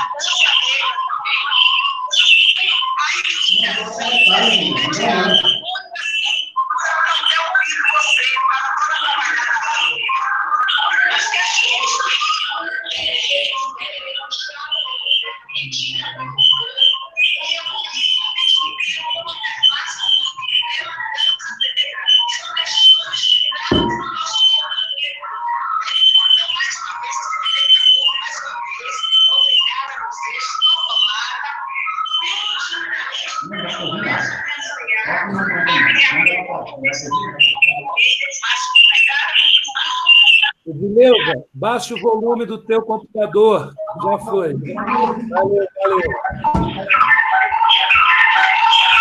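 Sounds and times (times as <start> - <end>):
tinny voice from phone speaker: 2.9 - 16.8, 32.7 - 38.7, 40.5 - 47.2.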